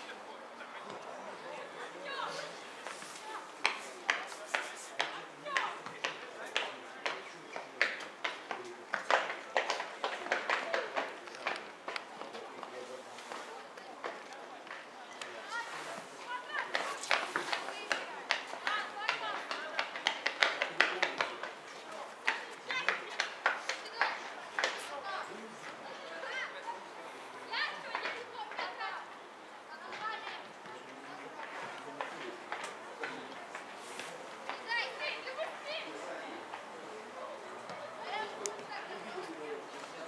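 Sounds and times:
spectators talking: 0.0 - 40.0.

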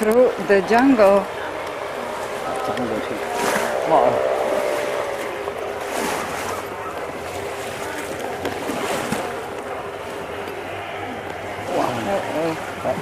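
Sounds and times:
water sloshing and splashing: 0.0 - 13.0.

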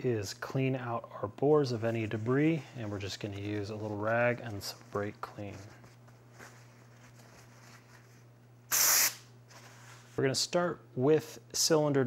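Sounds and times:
aerosol spray hissing: 8.7 - 9.3.

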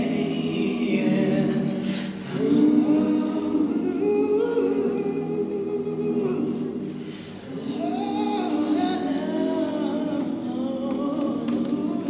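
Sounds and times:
person singing long held notes: 4.0 - 12.0.

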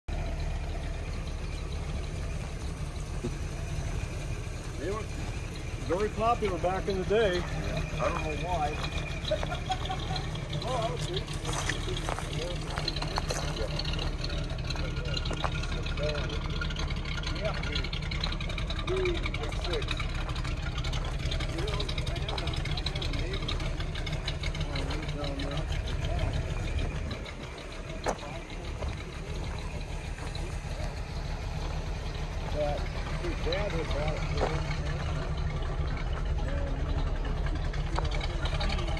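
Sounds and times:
car engine idling: 0.0 - 38.9
steady low rumble: 0.7 - 38.9
men talking at a distance: 4.5 - 38.9.

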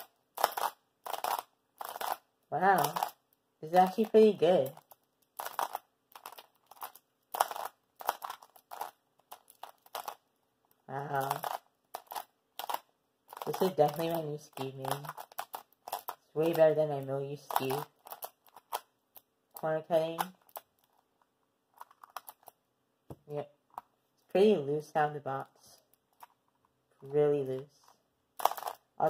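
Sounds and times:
puzzle cube pieces clacking: 0.0 - 21.1, 21.7 - 22.6, 28.4 - 29.0.

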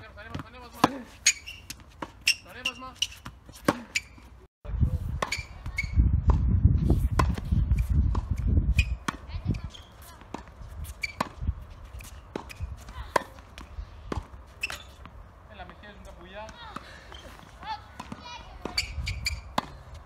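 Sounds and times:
tennis balls struck by rackets: 0.1 - 4.2, 7.1 - 20.0
tennis ball bouncing on hard court: 0.2 - 4.2, 7.1 - 20.0.

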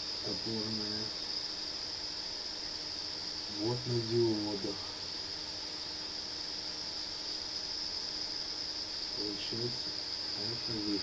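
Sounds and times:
background hiss: 0.0 - 11.0
faint low hum: 0.0 - 11.0
high-pitched whine: 0.0 - 11.0.

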